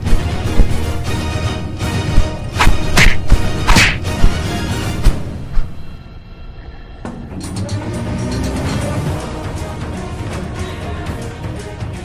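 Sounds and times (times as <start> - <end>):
background music: 0.0 - 12.0
sharp percussive hits: 2.2 - 4.5.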